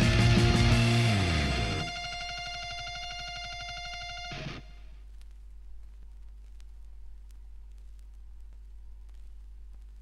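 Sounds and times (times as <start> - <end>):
held guitar note with tremolo: 0.0 - 4.9.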